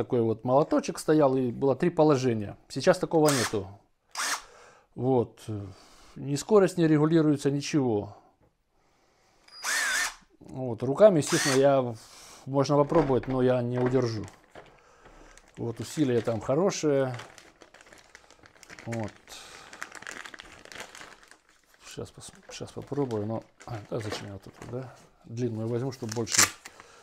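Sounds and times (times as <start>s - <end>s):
impact wrench motor whirring: 3.3s - 4.4s, 9.5s - 10.2s, 11.3s - 11.6s
plastic bag crinkling: 12.7s - 24.9s, 25.8s - 27.0s.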